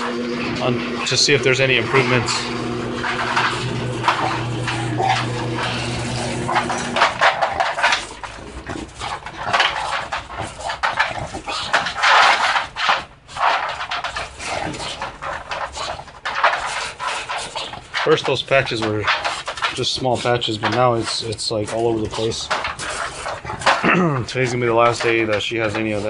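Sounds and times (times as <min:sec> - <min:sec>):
steady hum: 0:00.0 - 0:08.5
dog moving in wire crate: 0:00.4 - 0:26.0.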